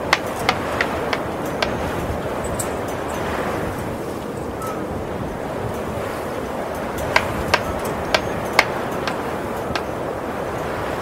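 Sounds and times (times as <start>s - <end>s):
rushing wind: 0.0s - 11.0s.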